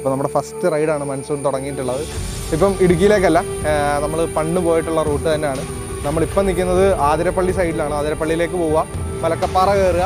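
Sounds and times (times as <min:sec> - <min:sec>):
man speaking: 0:00.0 - 0:10.0
low rumble: 0:02.1 - 0:10.0.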